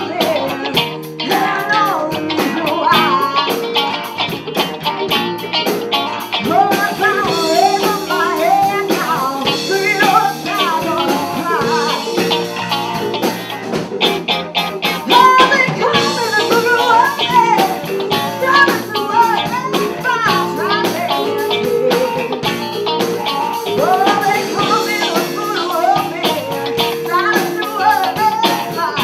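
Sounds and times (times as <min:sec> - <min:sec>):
woman singing: 0:00.0 - 0:03.8, 0:06.4 - 0:12.7, 0:15.0 - 0:29.0
drum kit beat: 0:00.0 - 0:29.0
electric guitars: 0:00.0 - 0:29.0.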